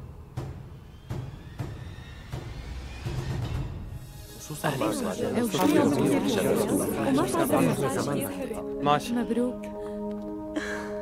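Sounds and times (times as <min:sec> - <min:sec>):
people chattering: 0:04.5 - 0:09.5.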